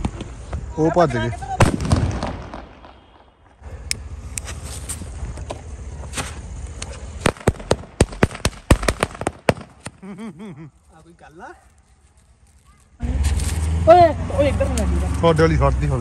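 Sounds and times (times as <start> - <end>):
firework rushing noise: 1.4 - 10.0
firework cracks: 1.5 - 5.0, 6.1 - 10.2
sharp firework bangs: 1.6 - 3.7, 7.0 - 10.1.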